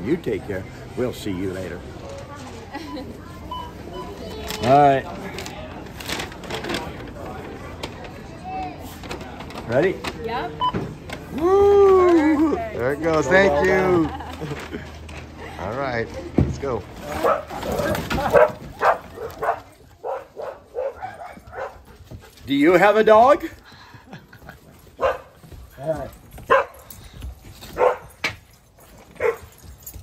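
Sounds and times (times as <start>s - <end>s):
dog barking: 17.2s - 17.5s, 18.2s - 21.9s, 25.0s - 25.3s, 26.5s - 26.8s, 27.8s - 28.2s, 29.2s - 29.5s.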